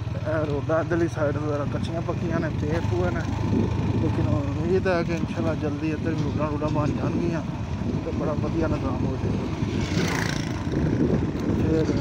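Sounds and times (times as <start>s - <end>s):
motorcycle engine running: 0.0s - 12.0s
road noise: 0.0s - 12.0s
wind on microphone: 2.7s - 5.1s, 6.2s - 12.0s
rush of noise: 7.8s - 12.0s.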